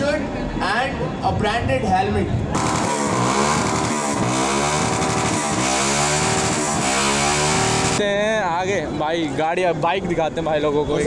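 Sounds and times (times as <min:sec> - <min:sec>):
motorcycle engine revving: 0:02.6 - 0:08.0.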